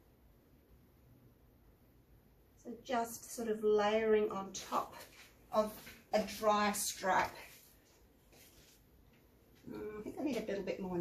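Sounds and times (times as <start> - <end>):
woman speaking: 2.6 - 7.6, 9.7 - 11.0.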